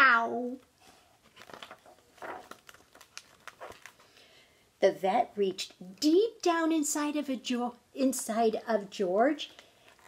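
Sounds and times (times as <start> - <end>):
paper rustling and page turning: 0.5 - 4.2.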